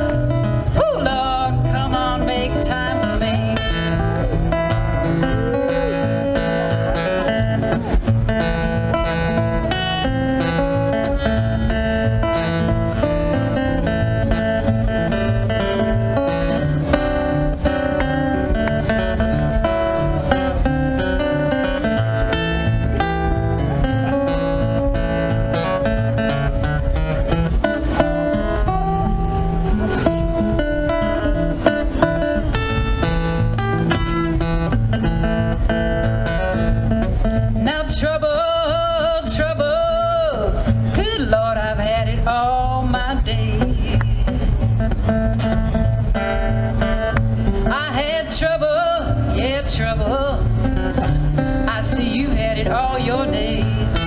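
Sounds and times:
acoustic guitar picking: 0:00.0 - 0:54.0.

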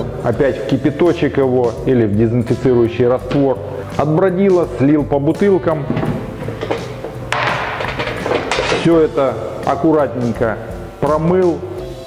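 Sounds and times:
plastic lid thump: 0:05.9 - 0:08.6.

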